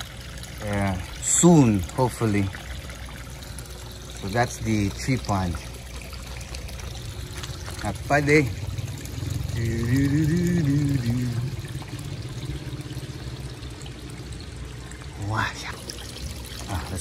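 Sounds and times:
water pouring and trickling: 0.0s - 17.0s
person's voice: 15.1s - 15.8s, 16.6s - 17.0s.

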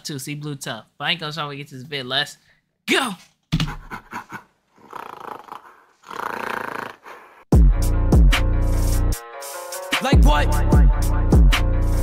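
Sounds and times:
drill beat with deep bass: 7.5s - 12.0s.

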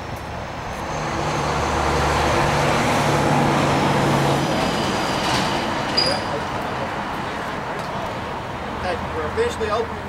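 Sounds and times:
vehicle engine hum passing: 0.0s - 10.0s
people talking: 8.8s - 10.0s.

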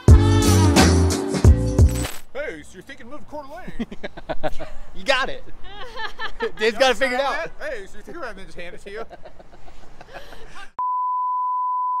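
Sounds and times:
voices and laughter: 3.6s - 7.6s, 8.8s - 10.8s.

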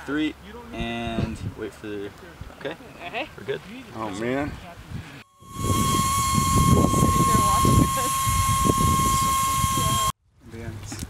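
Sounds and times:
low wind rumble: 4.5s - 10.1s
thin steady whistle: 5.2s - 10.2s
gas hissing from cylinder: 5.3s - 10.1s
voices: 5.6s - 10.9s.

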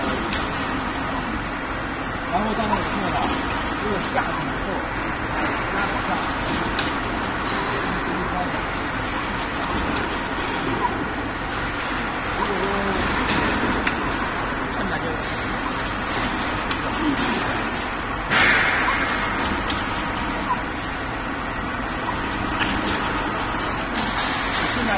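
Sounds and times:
fryer machine noise: 0.0s - 24.9s.

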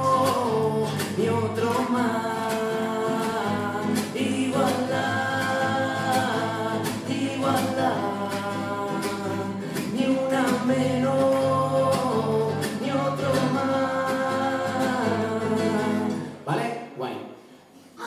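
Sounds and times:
man singing long notes: 0.0s - 16.2s
strummed classical guitar: 0.0s - 16.3s.

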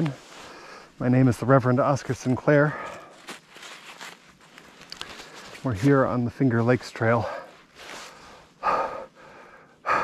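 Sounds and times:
man breathing hard: 7.2s - 10.0s.

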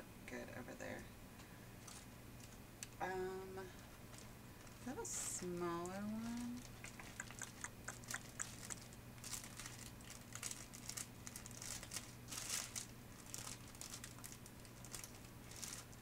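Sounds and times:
steady low hum: 0.0s - 16.0s
bag and papers rustling: 1.8s - 2.1s, 3.9s - 7.2s, 8.1s - 16.0s.

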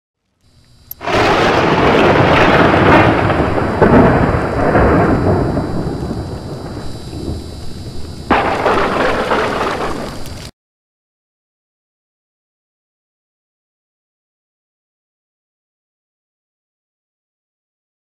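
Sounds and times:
steady rain: 0.9s - 10.5s
thunderclap: 1.0s - 10.4s.

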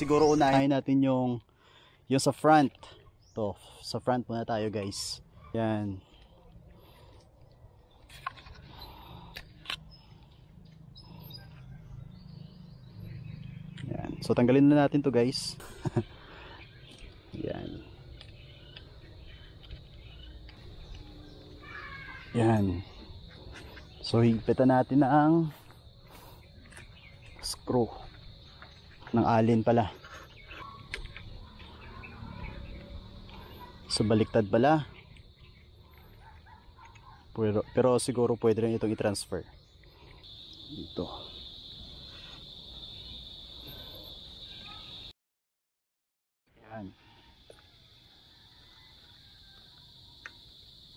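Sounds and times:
insects buzzing: 7.8s - 37.7s, 38.4s - 45.1s, 46.6s - 50.9s.

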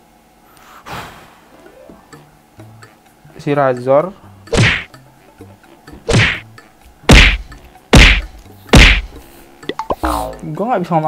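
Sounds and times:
hand slaps with heavy thud: 4.6s - 4.9s, 6.1s - 6.4s, 7.1s - 9.1s.

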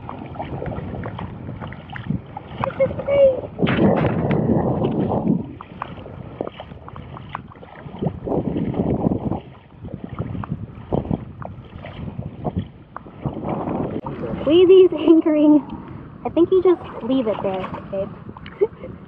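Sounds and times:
wading through shallow water: 0.0s - 19.0s
wind gusting on microphone: 0.0s - 19.0s.

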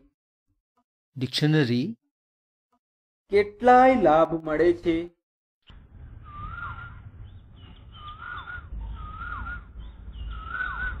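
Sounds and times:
steady low rumble: 5.7s - 11.0s
bird whistled call: 6.2s - 11.0s.

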